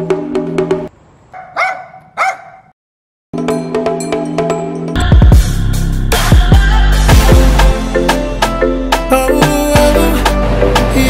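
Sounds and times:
small dog barking: 0:01.3 - 0:02.7.

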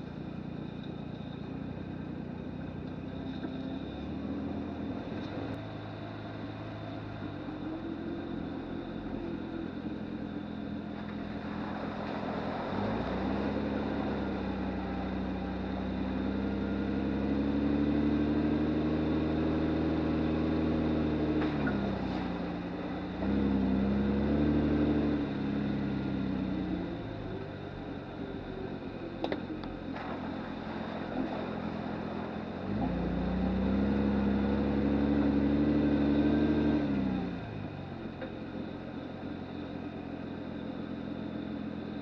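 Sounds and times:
truck engine pulling slowly: 0:00.0 - 0:42.0.

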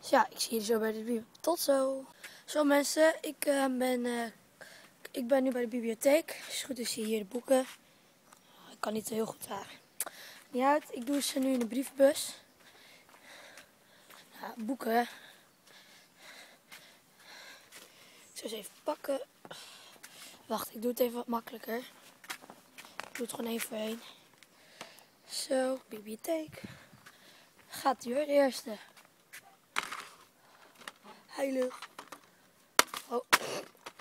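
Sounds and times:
faint breaths: 0:02.0 - 0:02.6, 0:04.6 - 0:05.1, 0:07.7 - 0:08.8, 0:09.7 - 0:10.6, 0:12.2 - 0:18.4, 0:19.4 - 0:20.5, 0:23.9 - 0:25.4, 0:26.5 - 0:27.9, 0:30.1 - 0:31.4.

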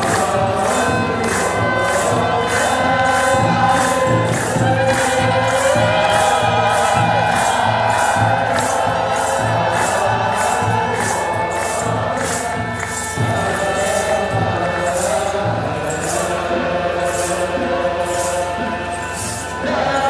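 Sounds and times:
crowd chanting and singing: 0:00.0 - 0:20.0
shaken jingles: 0:00.0 - 0:20.0.

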